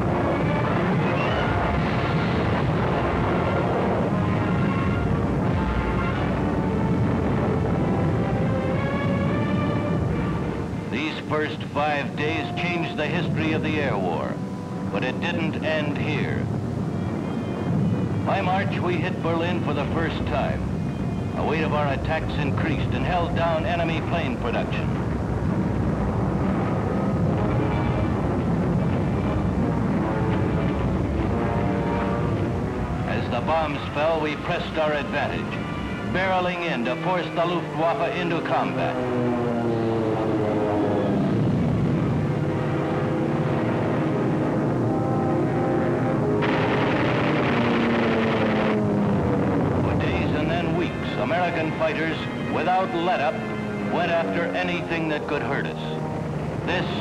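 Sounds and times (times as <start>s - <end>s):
aircraft engines droning: 0.0s - 57.0s.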